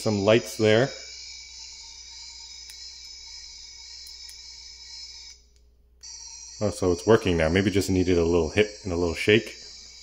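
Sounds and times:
toy electronic buzzing tone: 0.0s - 5.4s, 6.0s - 10.0s.

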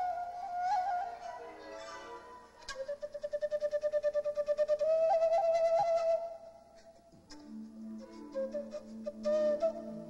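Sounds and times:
fluttering flute note: 2.6s - 6.4s.

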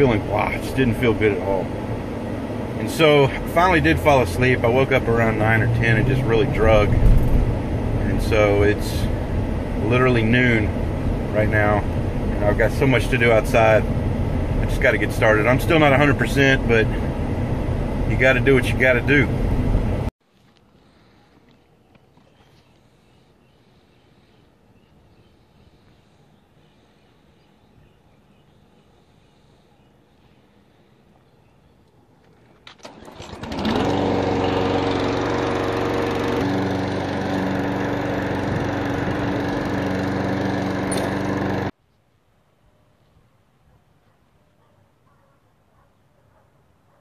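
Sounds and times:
lawn mower engine running: 0.0s - 20.0s, 32.5s - 41.7s.

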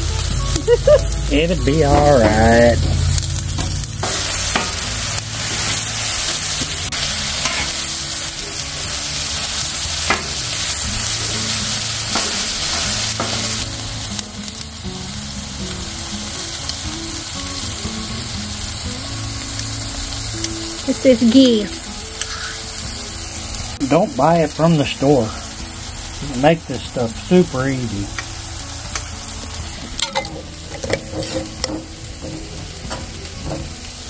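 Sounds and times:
meat sizzling on a griddle: 0.0s - 34.0s
metal scraper scraping steel: 30.0s - 33.7s.

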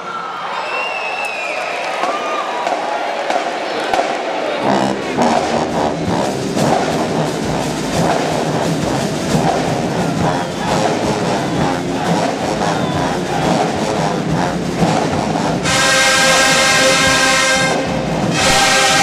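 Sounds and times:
crowd whoops: 0.0s - 4.0s, 9.8s - 13.8s
crowd talking and cheering: 0.0s - 19.0s
band with brass and drums: 2.0s - 19.0s.

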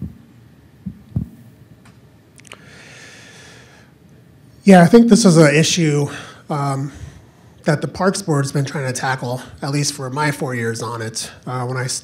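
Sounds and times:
microphone handling thumps: 0.8s - 1.4s.

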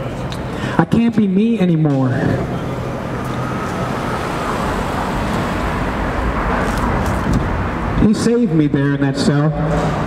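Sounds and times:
traffic rumble and road noise: 0.0s - 10.0s.

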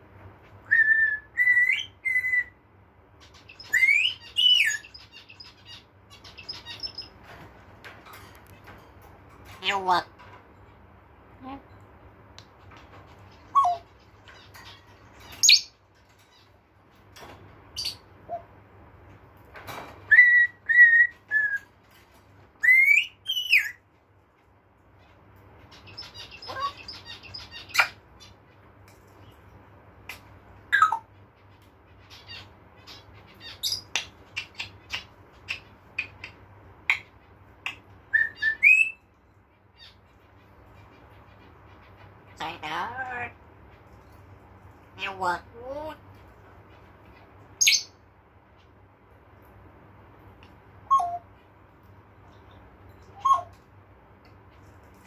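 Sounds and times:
parrot whistles chirps and clicks: 33.7s - 39.0s, 50.9s - 51.2s, 53.1s - 53.6s.

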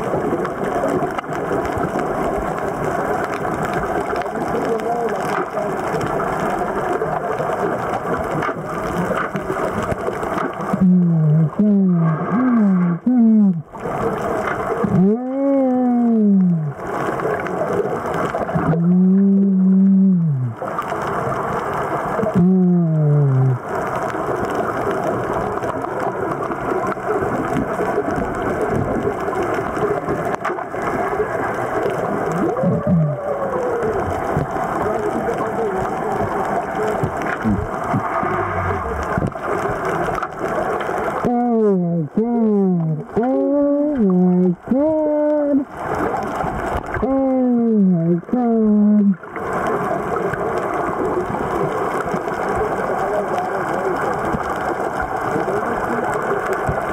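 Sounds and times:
rushing underwater noise: 0.0s - 56.9s
person vocalizing underwater: 10.4s - 13.9s, 14.7s - 17.1s, 18.5s - 20.8s, 22.2s - 23.8s, 32.2s - 35.9s, 36.8s - 39.4s, 41.1s - 49.4s.

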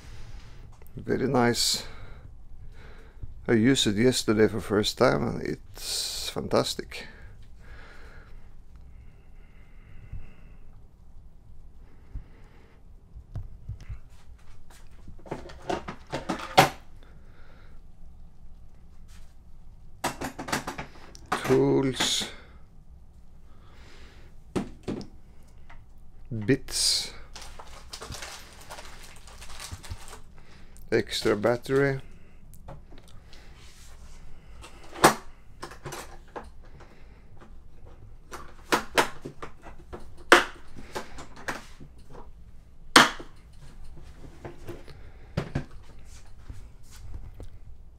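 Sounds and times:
clicks and knocks in plastic case: 15.2s - 16.8s, 20.0s - 22.1s
plastic case handled: 27.3s - 30.3s.

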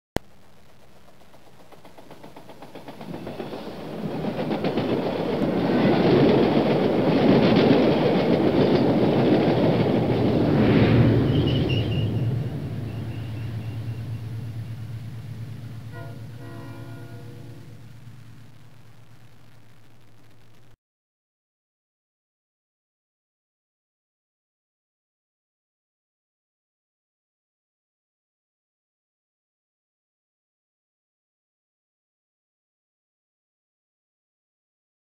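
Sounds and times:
train passing: 0.7s - 18.5s
train horn note: 10.9s - 17.9s.

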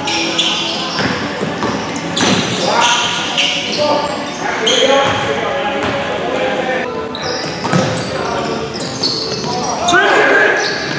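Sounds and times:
sneakers squeaking on wood: 0.0s - 6.4s, 7.1s - 10.9s
players' voices in a gym: 0.0s - 10.9s.

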